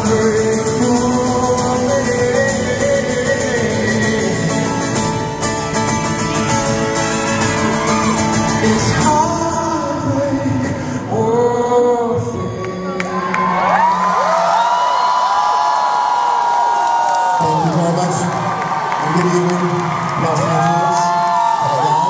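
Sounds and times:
man singing: 0.0 - 6.8, 7.6 - 14.7
strummed acoustic guitar: 0.0 - 12.0
audience whooping: 6.1 - 9.4, 12.4 - 22.0.

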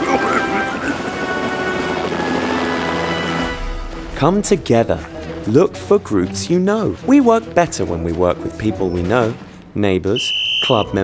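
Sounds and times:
helicopter rotor noise: 0.0 - 5.6
background music: 0.0 - 11.0.

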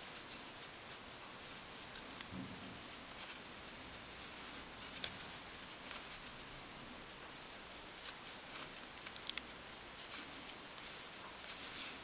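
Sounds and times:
steady hiss: 0.0 - 12.0
yarn rustling: 0.0 - 12.0
crochet hook clicks: 9.1 - 9.5.

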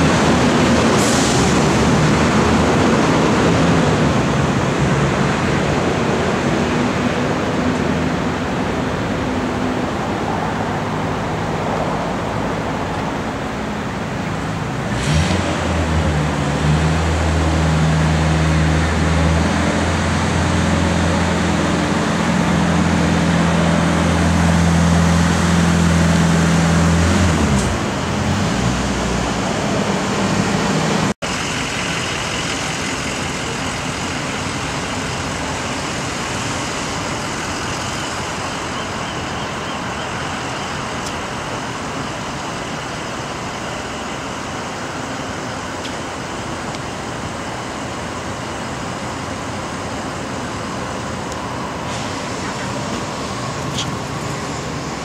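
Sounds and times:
traffic rumble: 0.0 - 55.0
vehicle engine humming: 0.0 - 55.0.

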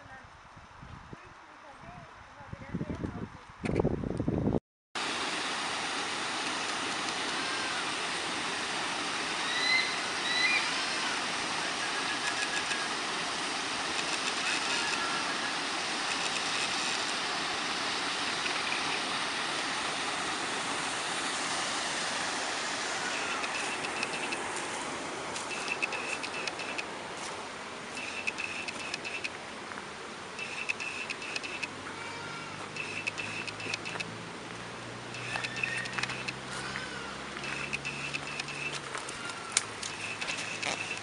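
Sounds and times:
water rushing through weir: 5.0 - 41.0.

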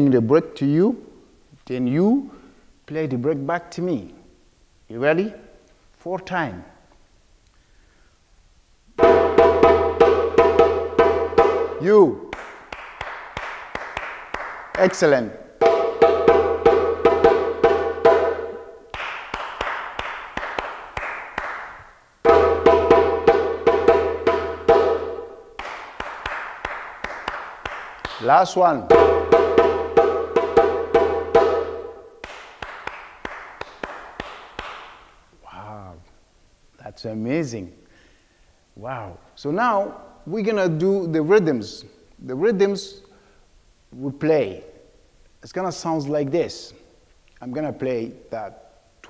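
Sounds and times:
djembe hand drum strokes: 9.0 - 12.3, 15.6 - 18.8, 22.3 - 25.4, 28.8 - 32.1
hand claps: 12.3 - 15.8, 17.7 - 22.0, 24.0 - 35.2.

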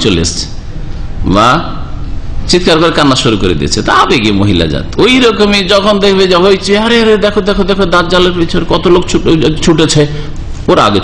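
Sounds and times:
man lecturing into microphone: 0.0 - 11.0.

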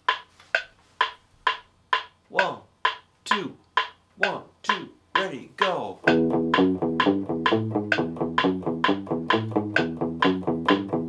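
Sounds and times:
metronome clicking: 0.0 - 11.0.

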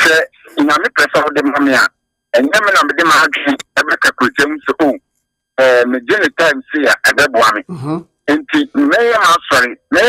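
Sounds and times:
person speaking: 7.5 - 8.9.

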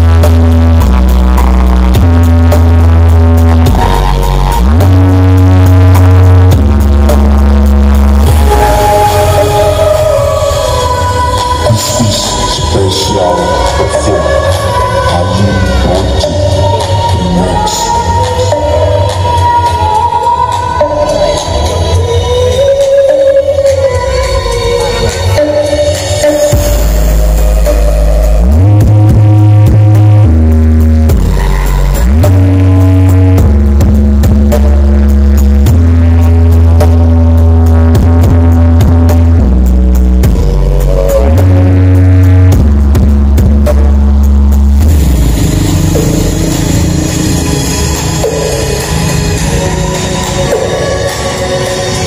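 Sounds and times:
loud music with heavy bass: 0.0 - 52.0.

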